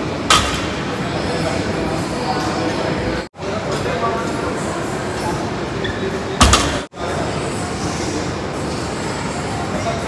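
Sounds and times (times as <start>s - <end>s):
gym room noise: 0.0s - 10.0s.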